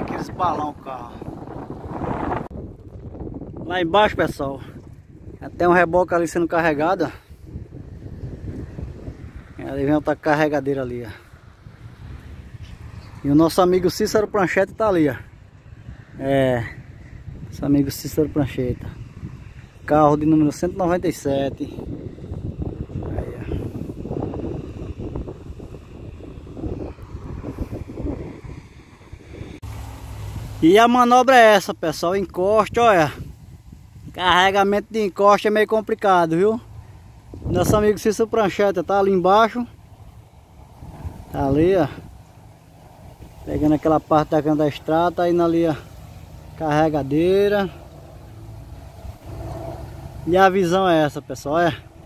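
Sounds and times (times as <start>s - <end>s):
wind buffeting microphone: 0.0s - 52.0s
distant loader engine rumble: 36.4s - 52.0s.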